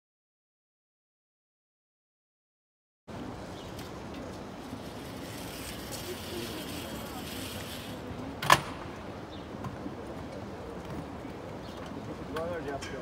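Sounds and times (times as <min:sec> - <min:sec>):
faint distant voices: 0:03.1 - 0:13.0
street background noise: 0:03.1 - 0:13.0.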